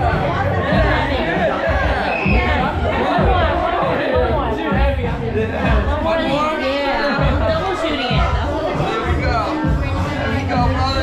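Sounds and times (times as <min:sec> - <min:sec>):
background music with bass beat: 0:00.0 - 0:11.0
people chatting: 0:00.0 - 0:11.0
people laughing: 0:00.1 - 0:06.4.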